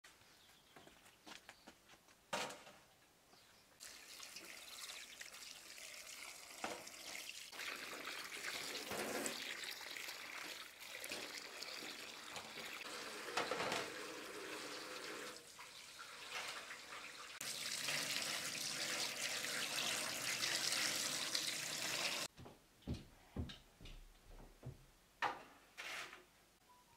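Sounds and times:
tap water into metal sink: 6.5s - 7.2s, 10.4s - 22.3s.

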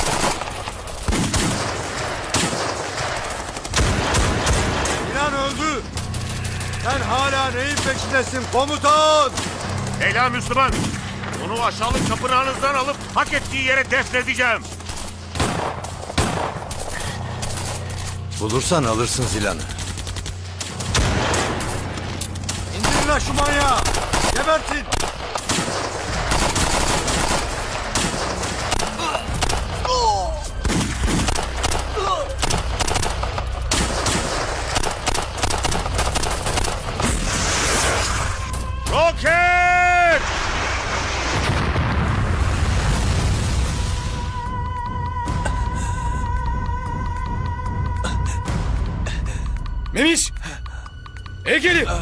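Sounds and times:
automatic gunfire: 0.0s - 5.1s, 19.8s - 29.9s, 30.6s - 37.1s
man yelling: 38.8s - 40.3s
explosion rumbling: 40.0s - 44.3s.

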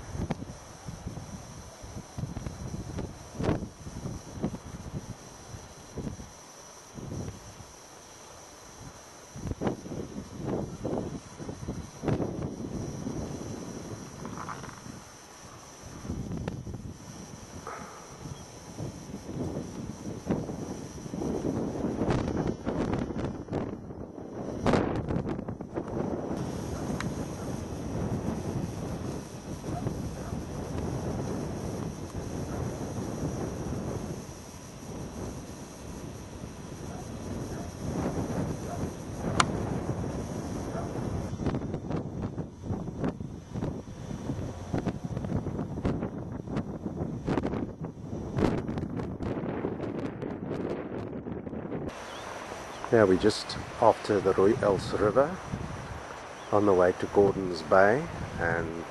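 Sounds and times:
wind buffeting microphone: 0.0s - 7.7s, 8.7s - 58.9s.

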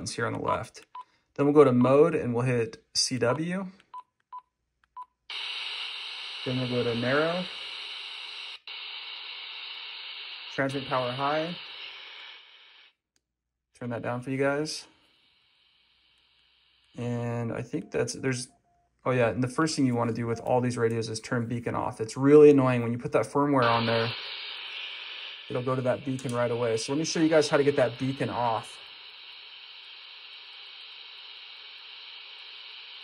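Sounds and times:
radio speaker hiss: 5.3s - 12.9s, 13.8s - 18.5s, 19.1s - 33.0s.

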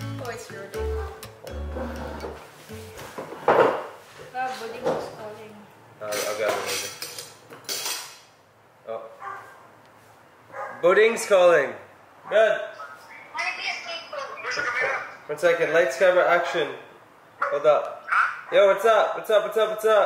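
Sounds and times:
background music: 0.0s - 3.2s
cutlery clinking on plates: 6.1s - 8.3s.

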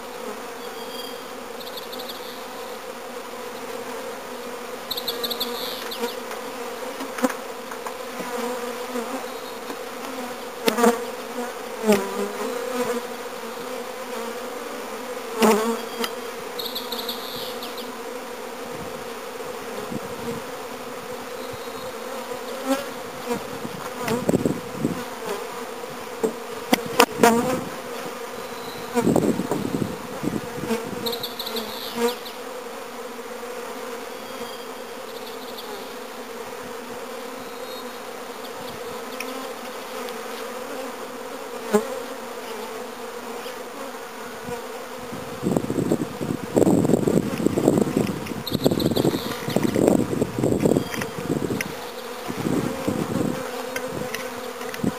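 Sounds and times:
honeybees buzzing: 0.0s - 54.9s.

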